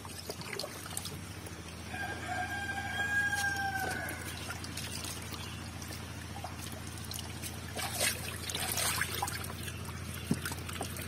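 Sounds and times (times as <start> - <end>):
fish splashing in a net: 0.0 - 1.9, 2.6 - 11.0
rooster crowing: 1.9 - 4.4.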